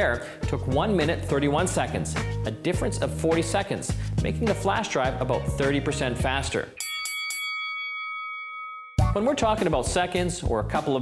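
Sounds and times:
bell-like chime: 0:06.8 - 0:09.4.

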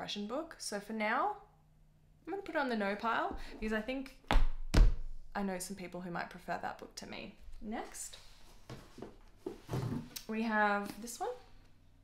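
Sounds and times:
book rustling and knocking: 0:08.6 - 0:10.2.

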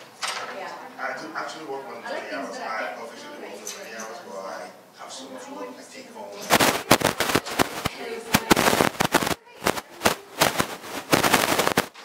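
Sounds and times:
microphone handling rustling and knocking: 0:06.5 - 0:12.0.

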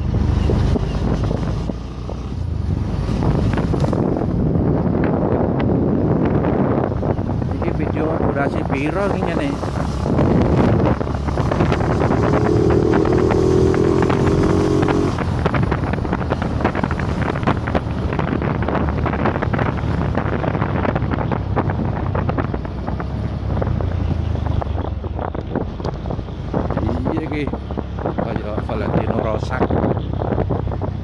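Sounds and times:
wind buffeting microphone: 0:00.0 - 0:31.0
motorcycle engine running: 0:08.2 - 0:24.6.

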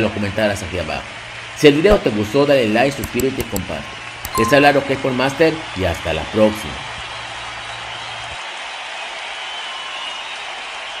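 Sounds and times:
audience applauding: 0:04.8 - 0:11.0.

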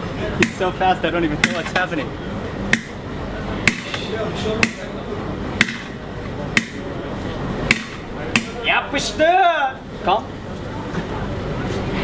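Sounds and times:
metal paddle clanging on metal: 0:01.4 - 0:01.9, 0:05.6 - 0:06.0.

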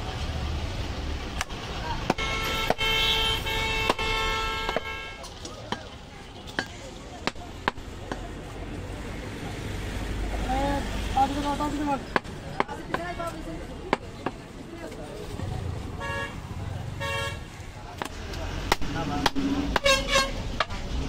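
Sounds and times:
street traffic: 0:00.0 - 0:21.0
vehicle horn: 0:02.2 - 0:05.2, 0:16.0 - 0:16.4, 0:17.0 - 0:17.5, 0:19.8 - 0:20.4.

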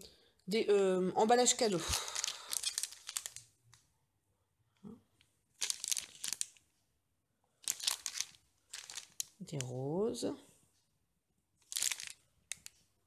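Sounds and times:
plastic packets crinkling: 0:01.4 - 0:03.6, 0:05.6 - 0:06.6, 0:07.6 - 0:09.7, 0:11.6 - 0:12.8.

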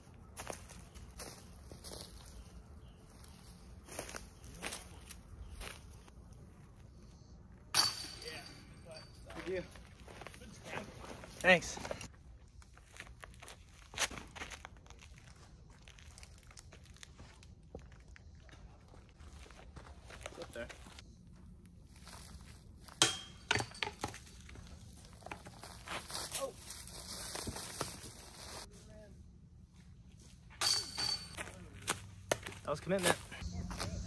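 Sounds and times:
footsteps on dirt and leaves: 0:00.0 - 0:06.9, 0:09.3 - 0:23.0, 0:24.2 - 0:28.8, 0:31.3 - 0:34.0.

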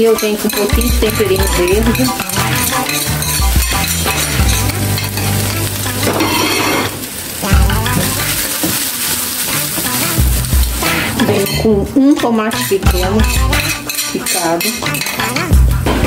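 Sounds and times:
spatula stirring in a pan: 0:00.0 - 0:15.5
ground beef sizzling in a pan: 0:00.0 - 0:16.0
background music with bass line: 0:00.8 - 0:06.3, 0:07.5 - 0:08.4, 0:10.0 - 0:12.0, 0:12.8 - 0:13.8, 0:14.8 - 0:16.0.

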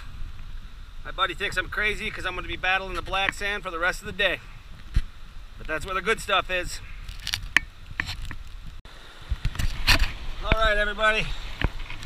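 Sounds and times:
gravel and stones clinking: 0:05.6 - 0:08.8.

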